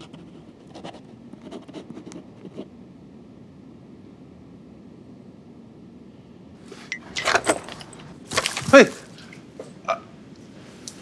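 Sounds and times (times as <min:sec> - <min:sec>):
keys working a door lock: 0:06.9 - 0:08.1.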